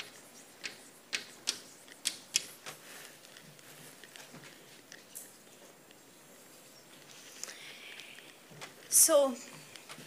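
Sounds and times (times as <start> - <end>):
chalk tapping and scraping on blackboard: 0.0 - 3.8.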